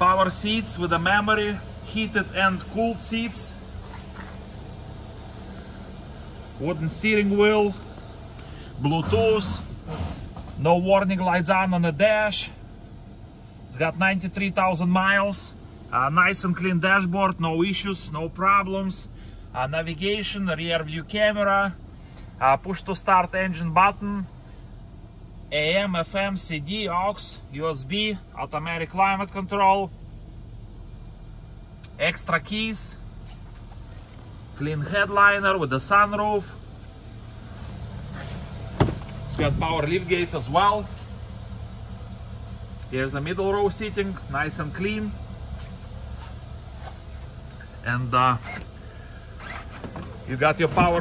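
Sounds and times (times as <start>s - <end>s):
low mechanical hum: 0.0s - 51.0s.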